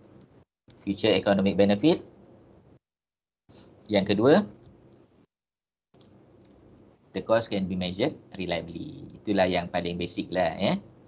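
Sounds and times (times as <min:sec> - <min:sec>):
faint room hiss: 0:00.0 - 0:02.8, 0:03.5 - 0:05.3, 0:06.0 - 0:11.0.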